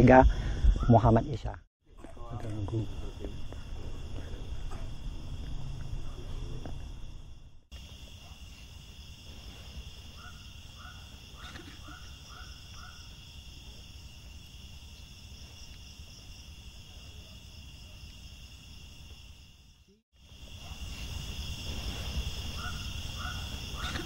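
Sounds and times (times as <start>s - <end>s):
crickets chirping: 0.0s - 24.0s.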